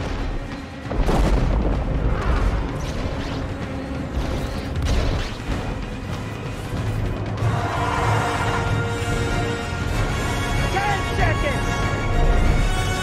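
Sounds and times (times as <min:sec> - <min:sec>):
dramatic film score music: 0:00.0 - 0:13.0.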